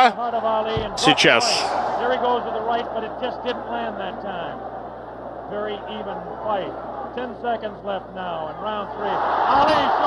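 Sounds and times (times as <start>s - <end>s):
man commentating: 0.0s - 4.6s
narration: 0.0s - 4.6s, 5.5s - 10.0s.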